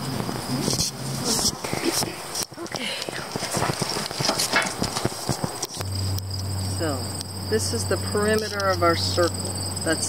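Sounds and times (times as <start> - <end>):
insects chirring: 0.0 - 10.0
low steady hum: 0.0 - 10.0.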